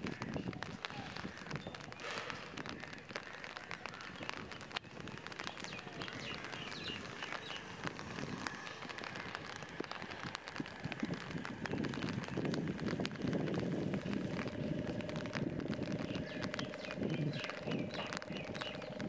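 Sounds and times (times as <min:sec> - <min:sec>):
rain hissing: 0:00.0 - 0:19.0
raindrops tapping: 0:00.0 - 0:19.0
low rumble: 0:06.4 - 0:19.0.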